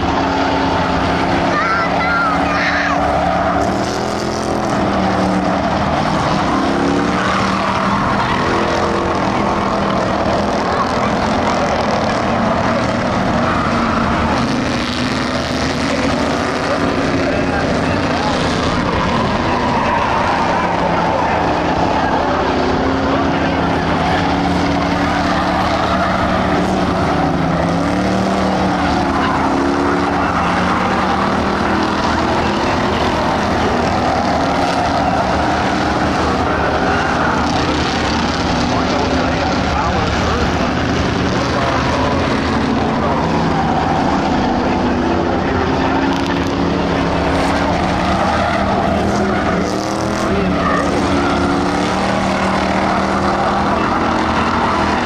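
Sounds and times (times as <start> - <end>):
race car engines roaring: 0.0 - 55.0.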